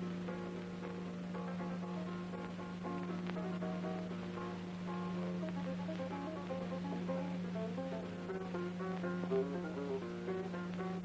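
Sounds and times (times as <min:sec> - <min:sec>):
plucked guitar dance music: 0:00.0 - 0:11.0
steady low hum: 0:00.0 - 0:11.0.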